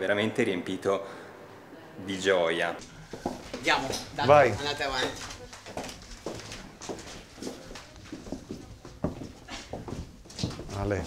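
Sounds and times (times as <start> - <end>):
footsteps on hard floor: 2.9 - 11.0.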